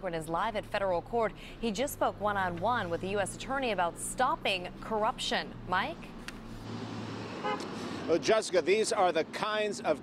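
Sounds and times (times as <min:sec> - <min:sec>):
street traffic: 0:00.0 - 0:10.0
car horn toot: 0:07.4 - 0:07.7.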